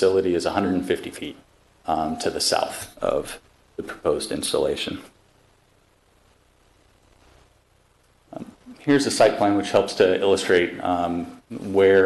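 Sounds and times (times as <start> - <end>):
man speaking into microphone: 0.0 - 5.2, 8.4 - 12.0.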